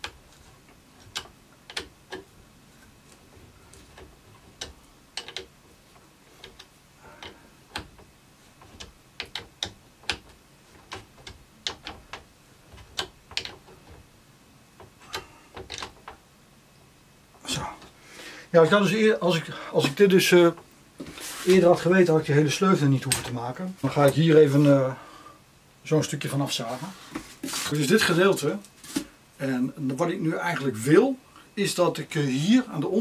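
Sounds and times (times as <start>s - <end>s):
hex key metallic clicks: 3.7s - 5.5s.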